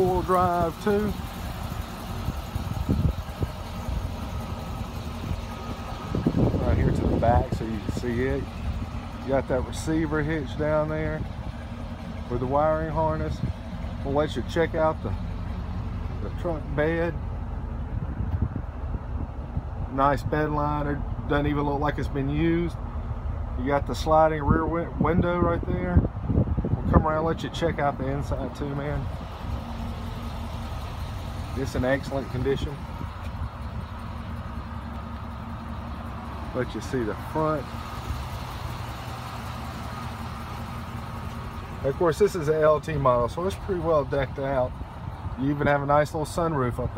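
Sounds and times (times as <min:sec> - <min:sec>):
pickup truck engine idling: 0:00.0 - 0:46.9
wind buffeting microphone: 0:02.1 - 0:04.4, 0:05.0 - 0:09.6, 0:17.5 - 0:19.9, 0:24.4 - 0:27.4.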